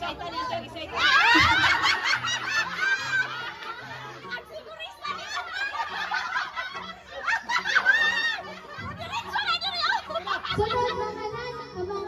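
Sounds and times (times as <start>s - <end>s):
people laughing: 0.8s - 11.4s.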